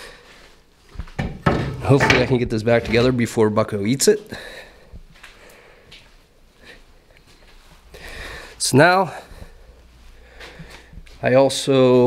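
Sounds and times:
man speaking: 0:01.8 - 0:04.4, 0:08.6 - 0:09.3, 0:11.2 - 0:12.0.

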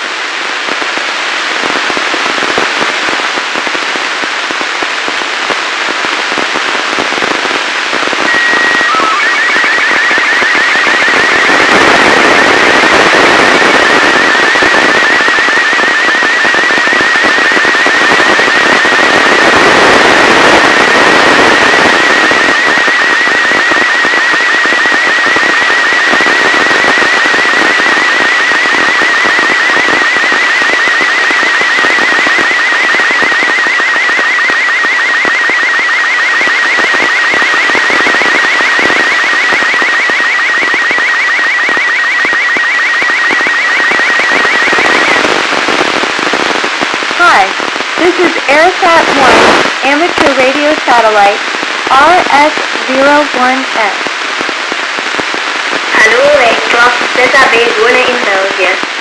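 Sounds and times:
radio hiss: 0:00.0 - 0:59.0
thin warbling tone: 0:08.3 - 0:11.3.

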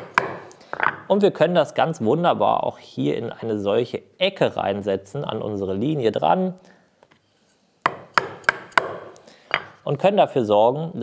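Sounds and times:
chisel struck into wood: 0:00.0 - 0:01.0, 0:07.9 - 0:09.7.

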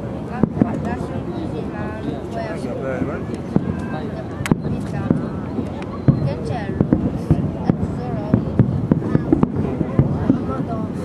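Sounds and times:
crowd chatter: 0:00.0 - 0:11.0
fireworks bangs and crackles: 0:00.0 - 0:11.0.

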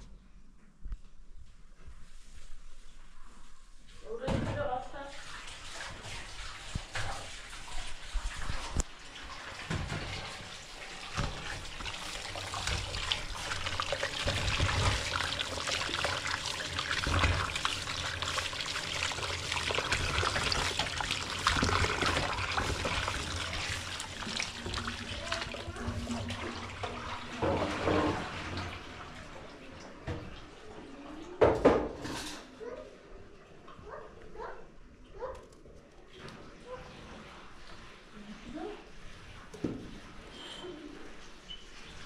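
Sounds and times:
vegetables washed under water: 0:04.1 - 0:31.8
kitchen knocks and clatter: 0:04.2 - 0:04.7, 0:09.6 - 0:13.1, 0:26.8 - 0:28.6, 0:31.4 - 0:32.5.

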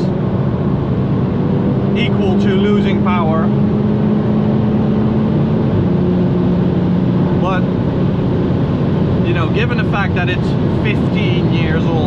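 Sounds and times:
car engine pulling hard: 0:00.0 - 0:12.0
road and wind noise: 0:00.0 - 0:12.0.

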